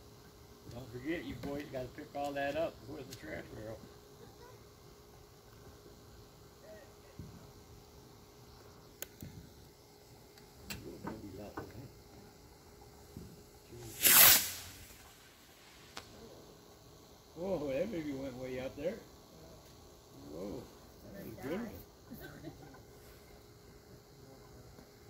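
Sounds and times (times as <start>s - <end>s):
firework hissing whoosh: 13.7s - 16.2s.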